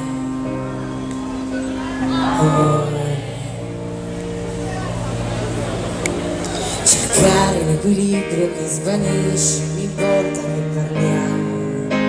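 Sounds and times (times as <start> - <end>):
sustained keyboard chord: 0.0 - 12.0.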